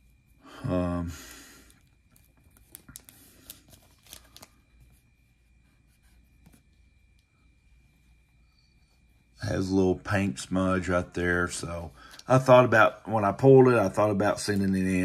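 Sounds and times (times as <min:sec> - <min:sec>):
faint steady high tone: 0:00.0 - 0:15.0
card handling clicks and rustles: 0:02.2 - 0:04.6.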